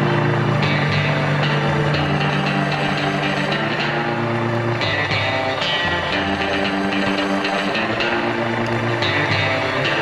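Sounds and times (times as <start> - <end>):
music with sustained chords: 0.0 - 10.0.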